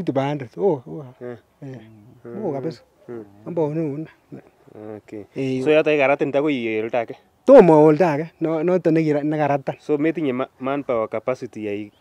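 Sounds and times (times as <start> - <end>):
man speaking: 0.0 - 12.0.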